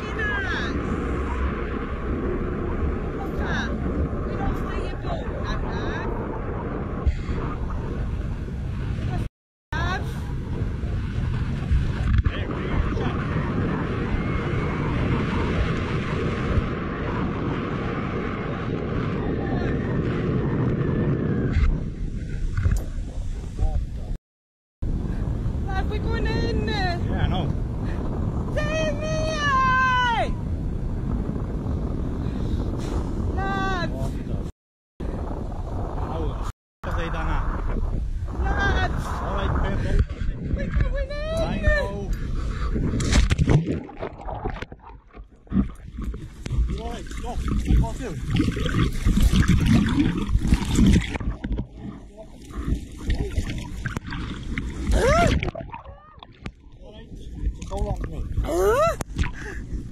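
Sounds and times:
wind rumbling on microphone: 0.0 - 24.2, 24.8 - 59.9.

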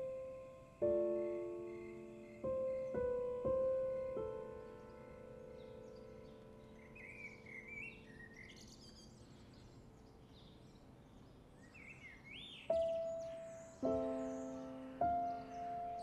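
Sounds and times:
small birds chirping: 0.0 - 16.0
soft piano note: 12.7 - 16.0.

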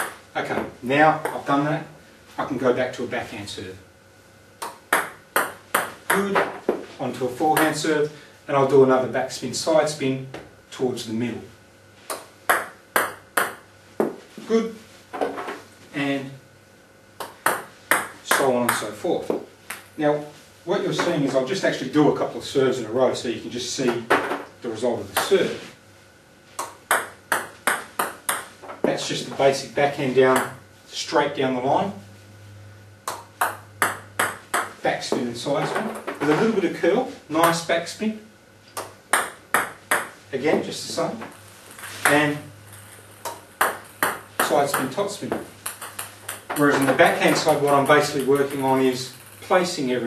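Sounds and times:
table tennis ball bouncing: 0.0 - 1.4, 4.6 - 6.9, 12.1 - 14.2, 17.2 - 19.9, 26.6 - 29.0, 30.3 - 30.6, 33.0 - 34.8, 38.8 - 40.2, 41.2 - 49.5.

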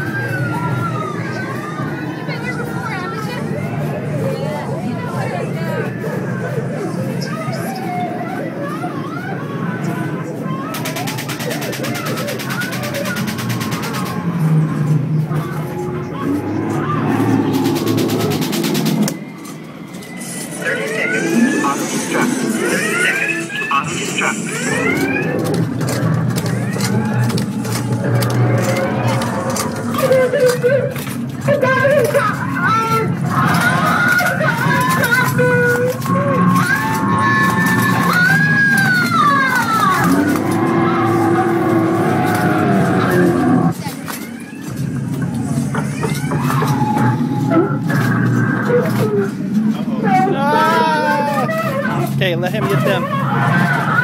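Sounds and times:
people's voices and cries: 0.0 - 54.0
spooky music and sound effects: 10.7 - 52.2
harsh rapid buzz: 16.0 - 19.2.

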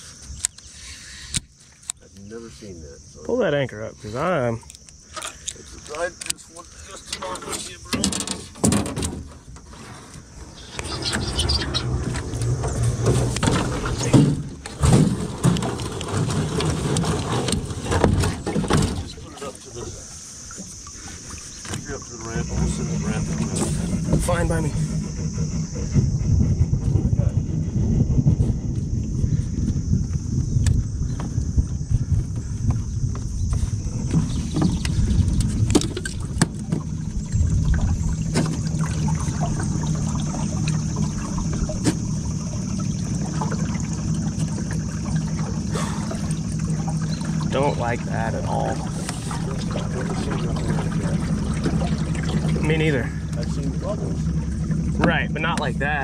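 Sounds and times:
small boat motor humming: 0.0 - 56.0
wind buffeting microphone: 10.2 - 56.0.

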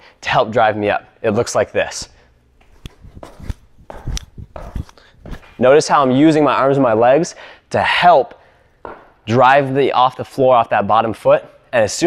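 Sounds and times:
feet thudding on gym turf: 2.6 - 5.6.

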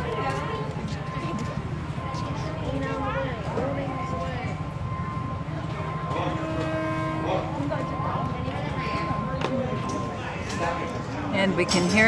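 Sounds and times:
distant train horn: 0.0 - 10.8
crowd chatter: 0.0 - 12.0.

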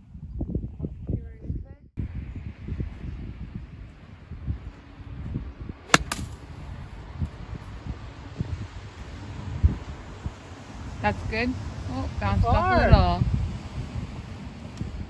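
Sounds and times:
wind on microphone: 0.0 - 15.0
golf club striking ball: 5.9 - 6.7.

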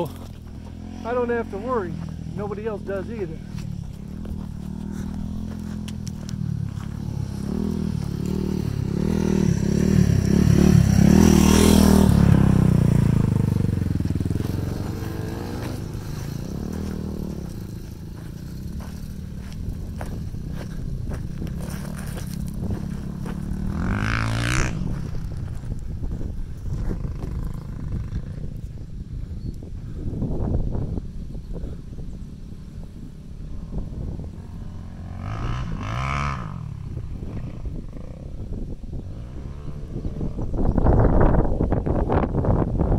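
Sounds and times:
dirt bike engines revving: 0.0 - 42.6.

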